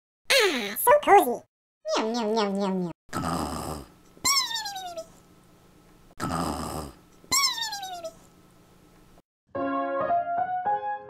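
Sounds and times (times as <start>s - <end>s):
cartoon snoring: 3.1s - 3.9s, 6.2s - 7.0s.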